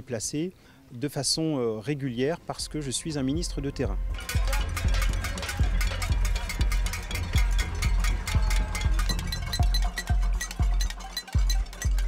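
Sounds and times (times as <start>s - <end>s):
crowd clanging pots and pans: 4.1s - 12.0s.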